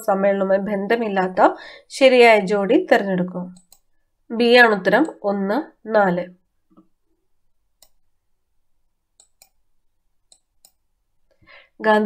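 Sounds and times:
person breathing: 1.6s - 1.9s, 11.3s - 11.8s
computer mouse clicks: 3.5s - 4.0s, 5.0s - 5.2s, 7.8s - 8.0s, 9.2s - 9.6s, 10.3s - 10.8s
person speaking: 4.3s - 6.4s.

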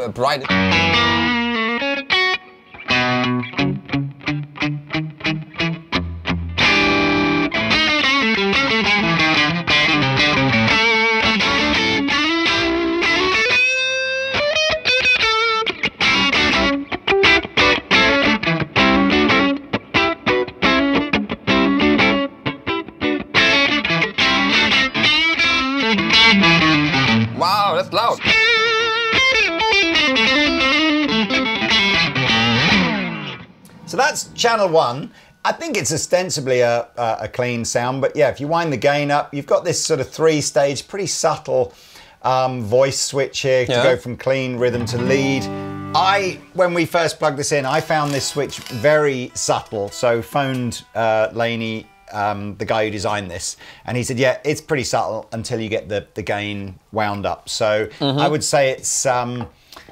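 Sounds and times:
overdriven electric guitar: 0.4s - 34.4s, 44.7s - 46.6s.

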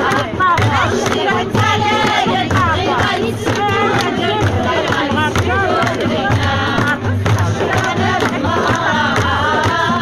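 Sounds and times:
frame drum beating: 0.0s - 10.0s
handclaps: 0.0s - 10.0s
women singing together: 0.0s - 10.0s.

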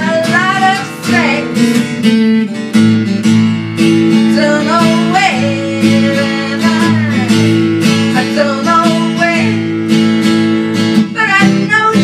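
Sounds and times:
woman singing: 0.0s - 2.3s, 3.9s - 9.9s, 10.9s - 12.0s
acoustic guitar strumming: 0.0s - 12.0s.

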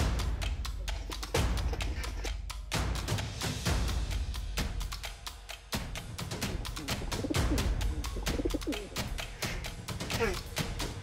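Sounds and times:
music with percussive beat: 0.0s - 11.0s
pigeons cooing: 6.4s - 9.1s.

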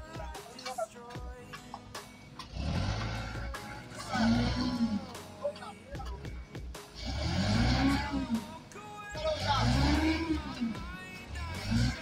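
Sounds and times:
diesel truck engine revving: 2.4s - 5.6s, 7.0s - 12.0s.

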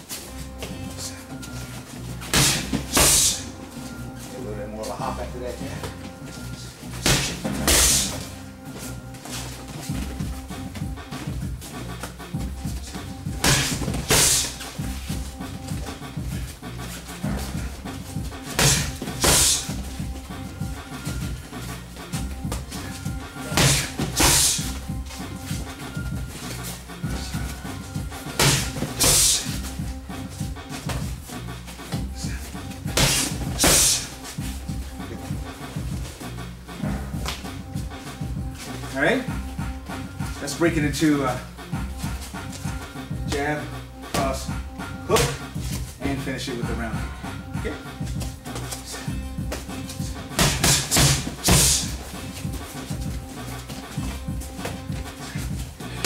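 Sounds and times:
background music: 0.0s - 56.0s
kick slapping into pads: 2.3s - 3.4s, 7.0s - 8.2s, 12.8s - 14.6s, 18.3s - 19.9s, 23.4s - 24.7s, 28.3s - 29.6s, 32.9s - 34.1s, 45.2s - 45.9s, 50.4s - 52.0s
kick striking pads: 2.3s - 3.4s, 7.0s - 8.3s, 12.4s - 16.6s, 17.2s - 21.5s, 22.1s - 26.4s, 27.0s - 31.3s, 31.9s - 36.2s, 36.8s - 38.6s, 44.1s - 46.0s, 49.4s - 55.8s.

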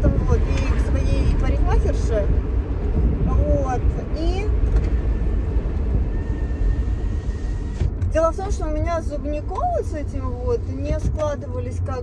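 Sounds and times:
car interior road and engine noise: 0.0s - 12.0s.

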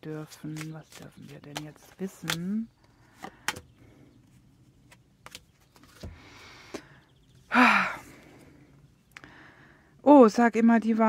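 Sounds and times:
card sliding: 0.4s - 3.6s
cards clicking and tapping on table: 0.5s - 2.6s, 3.2s - 3.6s.

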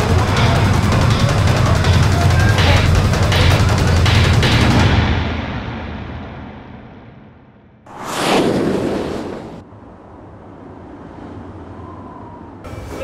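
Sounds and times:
rushing whoosh-boom: 7.9s - 9.6s.

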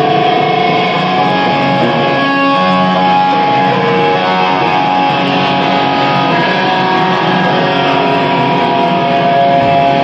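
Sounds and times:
electric guitar sustained chords: 0.0s - 10.0s
live band playing loud: 0.0s - 10.0s.

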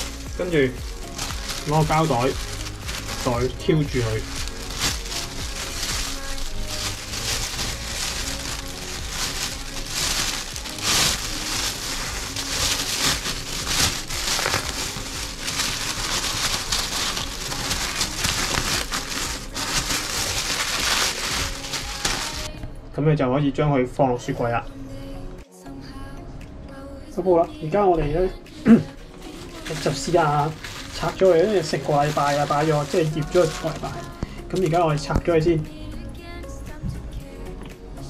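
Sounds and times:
plastic bag crinkling: 0.0s - 22.5s, 28.9s - 35.2s
background music: 0.0s - 38.0s.

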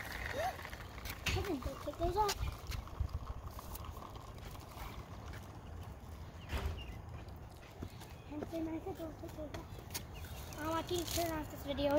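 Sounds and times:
child's high-pitched voice: 1.2s - 2.6s, 8.3s - 9.8s, 10.5s - 11.9s.

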